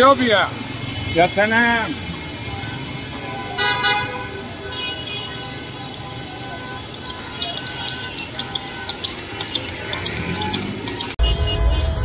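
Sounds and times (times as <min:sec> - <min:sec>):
cars moving past: 0:00.0 - 0:11.2
car horn honks: 0:00.8 - 0:12.0.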